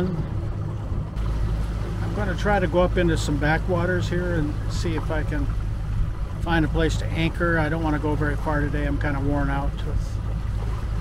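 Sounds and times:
boat motor humming: 0.0s - 11.0s
wind rumbling on microphone: 0.0s - 11.0s.

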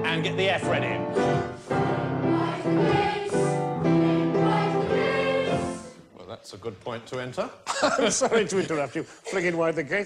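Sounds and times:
boys' choir singing: 1.3s - 6.0s.

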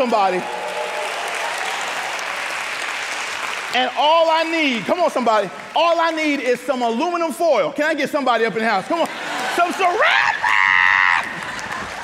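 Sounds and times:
congregation applauding: 0.0s - 7.1s, 9.1s - 12.0s
man's voice: 3.8s - 10.3s.

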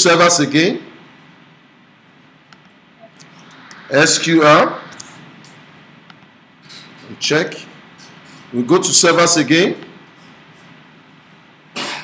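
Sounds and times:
faint room noise: 0.0s - 12.0s
person coughing: 11.8s - 12.0s.

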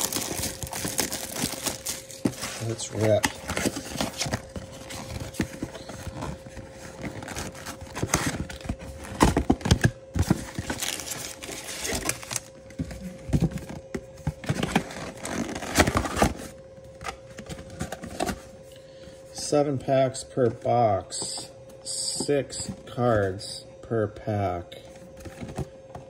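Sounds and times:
cardboard box tearing: 0.0s - 12.5s, 14.6s - 16.5s
foil packs crinkling: 0.0s - 12.5s, 14.6s - 16.4s.

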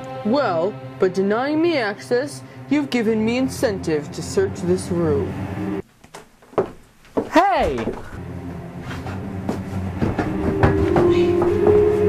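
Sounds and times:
steady held tone: 8.2s - 12.0s.

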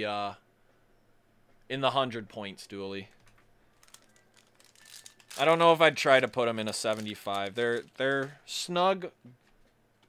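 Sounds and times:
trading cards rustling: 3.1s - 8.6s
foil pack crinkling: 3.8s - 8.3s.

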